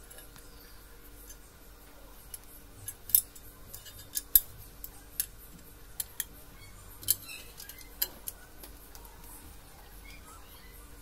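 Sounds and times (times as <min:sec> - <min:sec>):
metal brackets clicking and clinking: 0:02.2 - 0:09.1.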